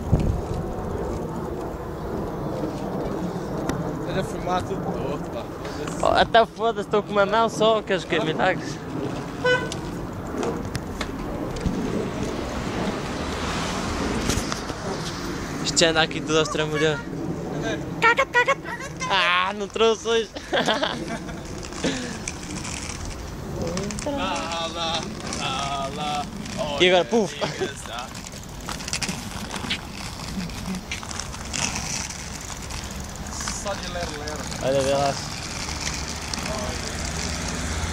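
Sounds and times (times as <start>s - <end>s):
road traffic noise: 0.0s - 37.9s
skate wheels rolling on asphalt: 0.0s - 37.9s
high horn toot: 9.4s - 9.8s.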